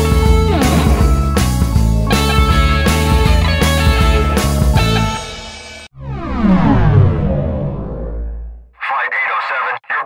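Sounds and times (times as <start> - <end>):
background music: 0.0 - 5.9
tinny radio voice speaking: 8.8 - 10.0.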